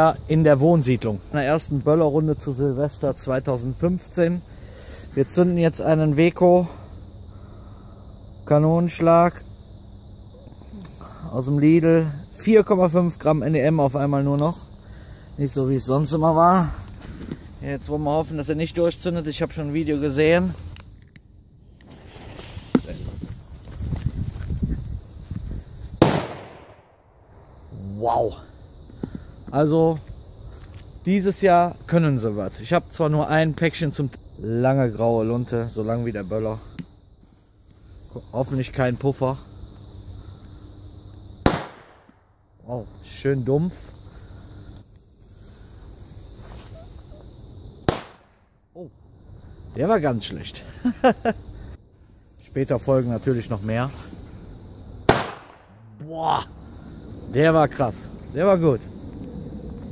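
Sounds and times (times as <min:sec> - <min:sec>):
firecracker bang: 0:26.0 - 0:27.1, 0:41.4 - 0:42.2, 0:47.8 - 0:48.4, 0:55.1 - 0:55.8.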